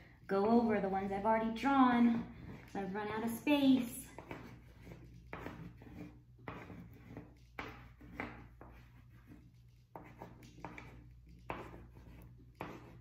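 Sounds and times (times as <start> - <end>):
pencil scratching on paper: 2.2 - 13.0.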